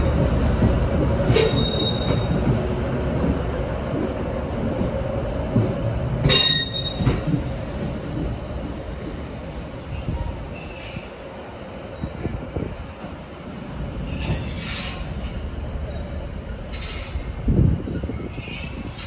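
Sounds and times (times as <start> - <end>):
train wheels squealing: 1.3 - 2.4, 6.2 - 7.4, 9.0 - 12.3, 13.4 - 19.0.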